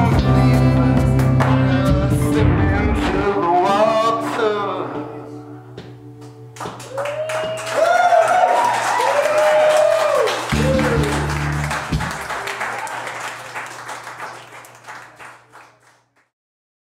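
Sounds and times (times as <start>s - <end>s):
audience applauding and cheering: 6.6s - 16.3s.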